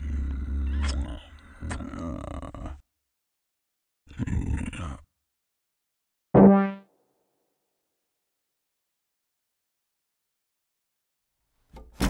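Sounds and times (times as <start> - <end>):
comic pitched note effect: 6.4 - 6.9.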